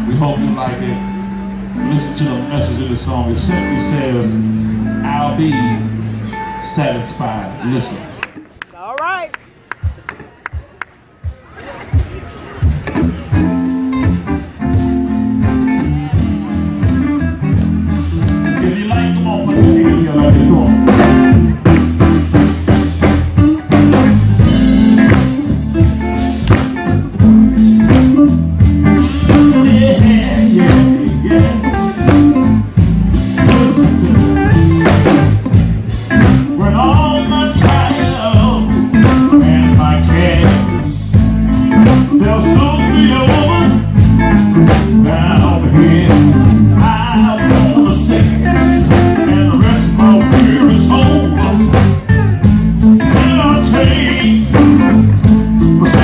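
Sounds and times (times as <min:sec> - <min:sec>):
electric guitar: 0:00.0 - 0:08.8, 0:11.8 - 0:56.0
bass guitar: 0:00.0 - 0:56.0
drums: 0:00.0 - 0:56.0
person singing: 0:15.7 - 0:17.4, 0:18.5 - 0:21.4, 0:29.0 - 0:32.4, 0:33.2 - 0:35.1, 0:36.4 - 0:43.9, 0:44.8 - 0:52.1, 0:53.0 - 0:56.0.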